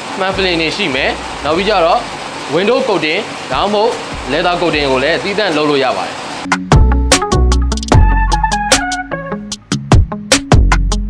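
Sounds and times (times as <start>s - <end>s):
man talking: 0.1s - 6.2s.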